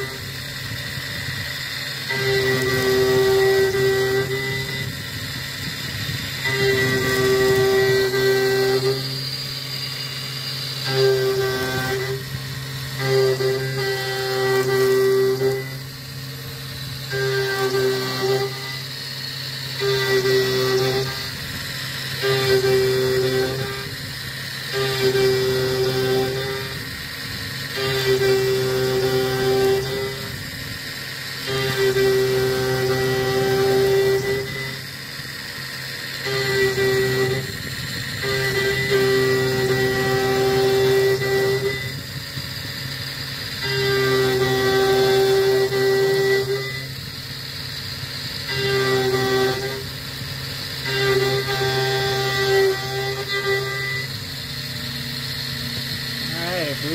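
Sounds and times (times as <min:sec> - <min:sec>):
milling cutter cutting metal: 0:00.0 - 0:56.9
spindle humming: 0:00.0 - 0:56.9
high singing tone: 0:50.9 - 0:56.9.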